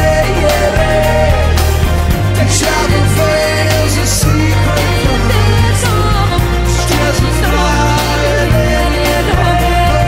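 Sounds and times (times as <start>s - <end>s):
person singing: 0.0s - 10.0s.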